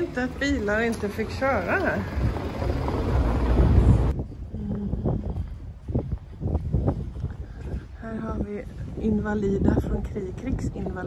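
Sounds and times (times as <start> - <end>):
car engine rumbling: 0.0 - 4.2
tyres on cobblestones: 0.0 - 11.0.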